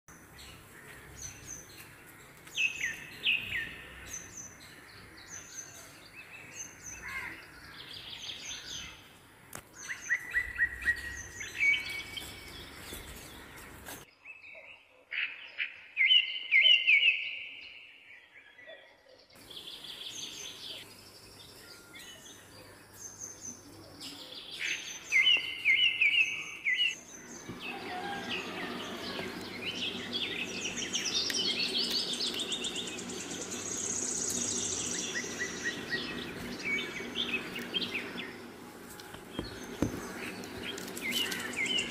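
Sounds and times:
birds chirping and calling: 0:00.1 - 0:41.9.

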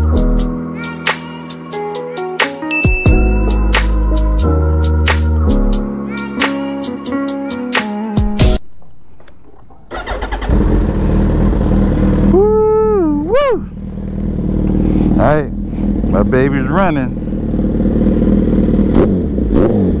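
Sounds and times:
engine running: 0:09.4 - 0:20.0
person shouting with wavering pitch: 0:12.2 - 0:13.8.

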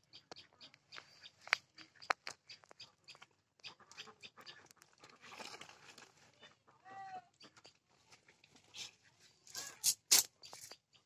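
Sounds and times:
small chirps and clicks: 0:00.0 - 0:05.1
faint animal call: 0:06.4 - 0:07.5.

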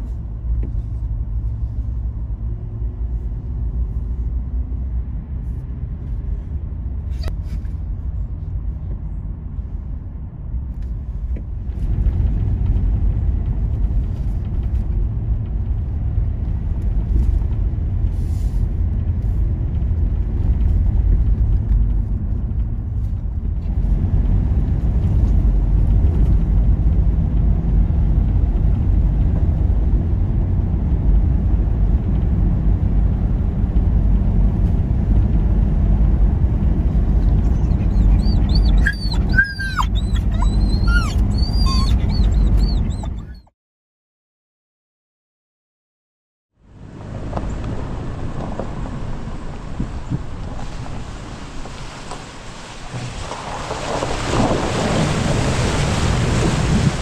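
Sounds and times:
car cabin road rumble: 0:00.0 - 0:43.5, 0:46.6 - 0:57.0
dog whining: 0:07.1 - 0:07.4, 0:37.3 - 0:43.5.

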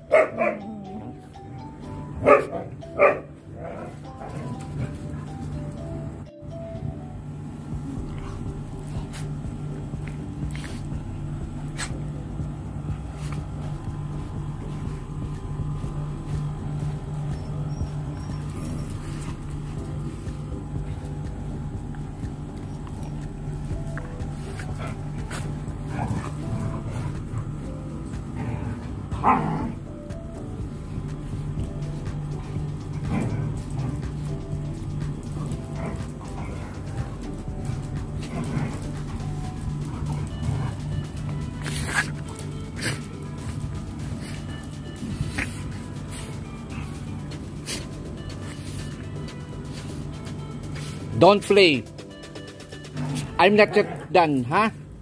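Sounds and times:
background music: 0:00.0 - 0:55.0
dog barking: 0:00.1 - 0:00.7, 0:02.2 - 0:03.9.

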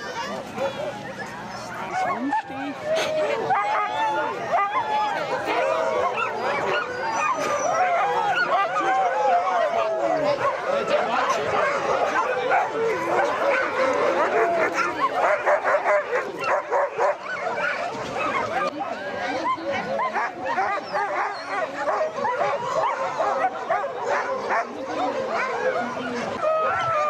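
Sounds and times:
sled dogs barking and yipping: 0:00.0 - 0:27.0.

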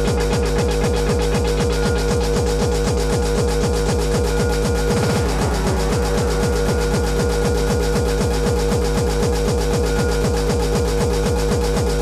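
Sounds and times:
fast kick drum: 0:00.0 - 0:12.0
held synth note: 0:00.0 - 0:12.0.

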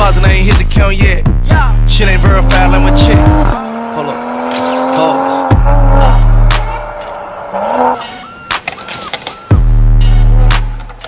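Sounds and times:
hip hop track: 0:00.0 - 0:11.0
car tyres squealing: 0:02.0 - 0:11.0.

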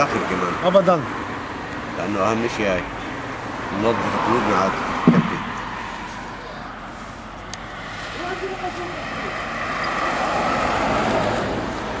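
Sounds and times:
car passing: 0:00.0 - 0:12.0
faint voices: 0:02.0 - 0:09.8.

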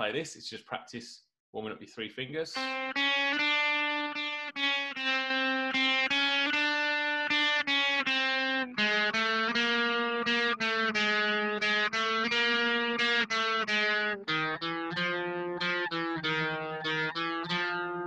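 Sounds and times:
electric guitar single notes: 0:02.6 - 0:18.0.

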